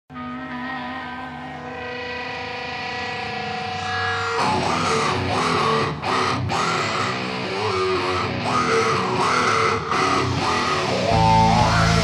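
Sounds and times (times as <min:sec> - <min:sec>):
electric guitar chord ringing: 0:00.1 - 0:12.0.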